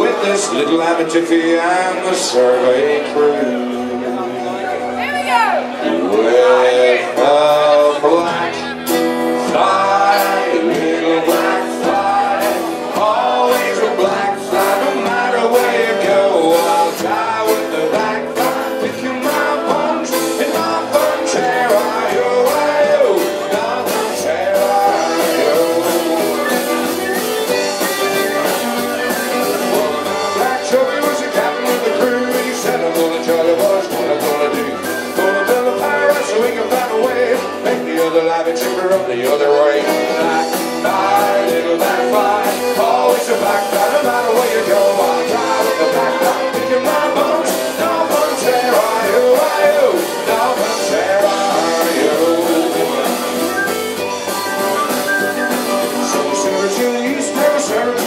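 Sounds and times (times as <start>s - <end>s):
acoustic guitar strumming: 0.0s - 58.0s
live folk band music: 0.0s - 58.0s.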